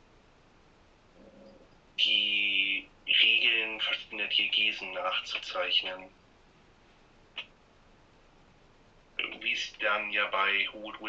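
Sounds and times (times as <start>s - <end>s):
person humming faintly: 1.2s - 3.7s.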